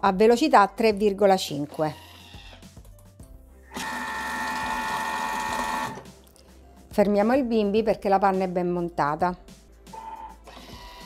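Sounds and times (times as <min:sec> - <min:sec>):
food processor motor whine: 0:03.7 - 0:06.0.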